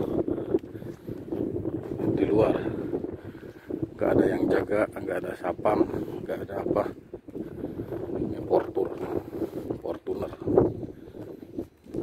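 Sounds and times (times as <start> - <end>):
wind buffeting microphone: 0.0 - 12.0
man speaking: 8.4 - 10.6.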